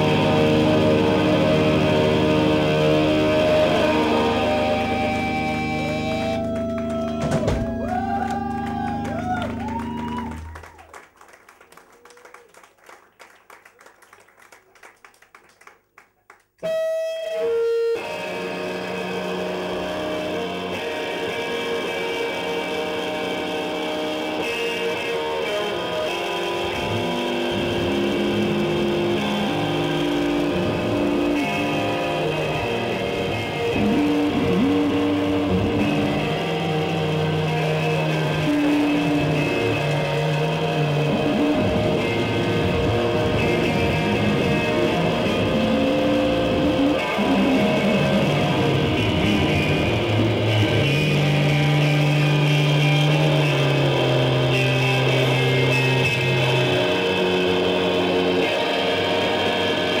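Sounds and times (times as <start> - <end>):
live rock band playing: 0.0 - 10.6, 16.6 - 60.0
long held bass notes: 0.0 - 10.7, 17.5 - 60.0.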